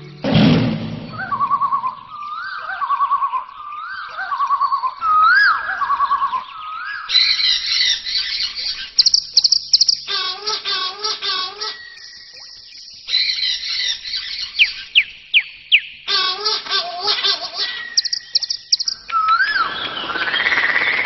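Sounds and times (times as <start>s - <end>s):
high bird chirping: 1.0s - 21.0s
bird whistling and trilling: 1.1s - 16.0s, 17.6s - 21.0s.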